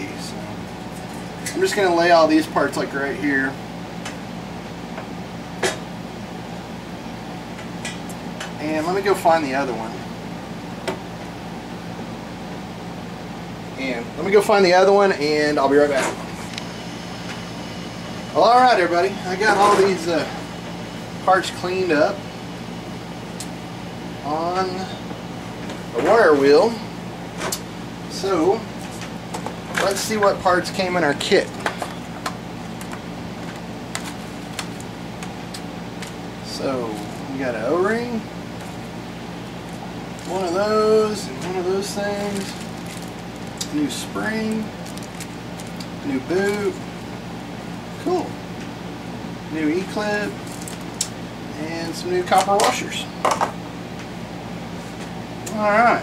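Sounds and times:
low background hum: 0:00.0 - 0:56.0
plastic blister pack crinkling: 0:42.1 - 0:43.8, 0:44.4 - 0:47.1, 0:50.4 - 0:51.1.

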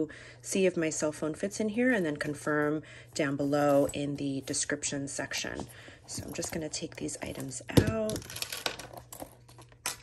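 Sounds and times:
small items tapping on wood: 0:07.7 - 0:10.0.

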